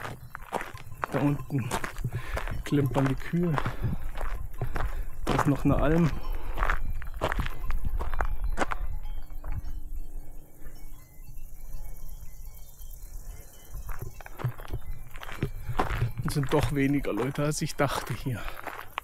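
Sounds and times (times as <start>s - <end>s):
footsteps: 0.0s - 9.9s, 13.3s - 19.0s
wind rumble on microphone: 0.0s - 17.3s
cowbells jingling faintly: 0.0s - 19.0s.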